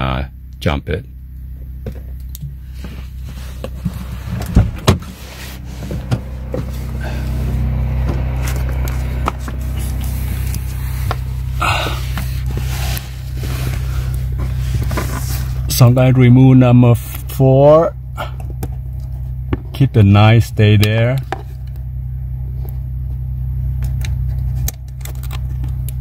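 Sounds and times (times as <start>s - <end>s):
steady low hum: 0.0s - 26.0s.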